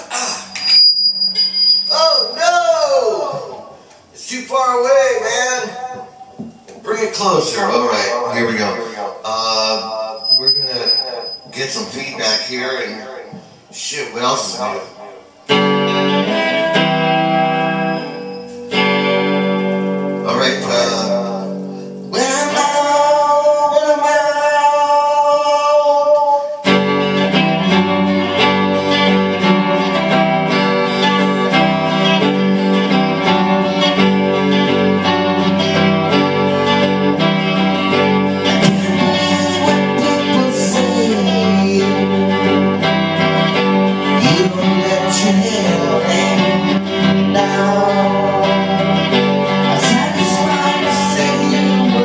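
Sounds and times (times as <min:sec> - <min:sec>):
electric guitar strumming: 0:00.0 - 0:04.3, 0:04.9 - 0:52.0
man singing: 0:22.1 - 0:26.7, 0:38.5 - 0:42.6, 0:44.2 - 0:52.0.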